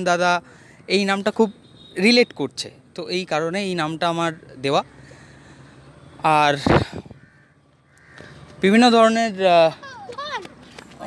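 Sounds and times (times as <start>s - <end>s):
crow cawing: 6.8s - 8.6s.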